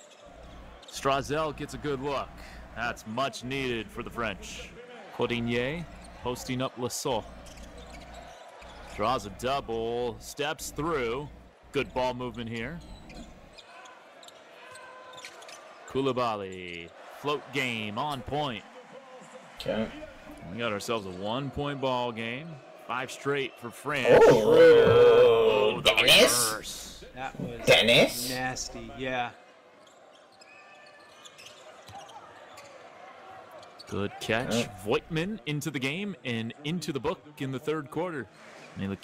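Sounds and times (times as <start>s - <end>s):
arena background noise: 24.0s - 29.2s.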